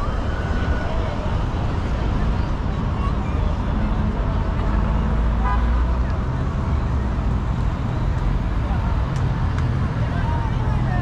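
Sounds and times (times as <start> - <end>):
city traffic rumble: 0.0 - 11.0
passers-by talking: 0.0 - 11.0.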